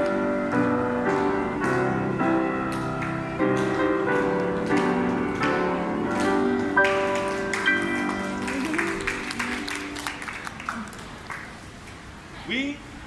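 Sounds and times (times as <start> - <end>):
grand piano playing: 0.0 - 10.7
hand clapping: 2.7 - 11.6.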